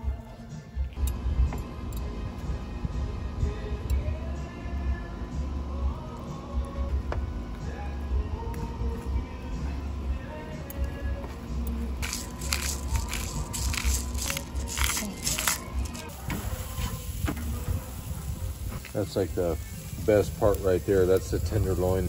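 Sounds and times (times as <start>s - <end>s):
background music: 0.0s - 22.0s
pepper mill grinding: 12.0s - 16.2s.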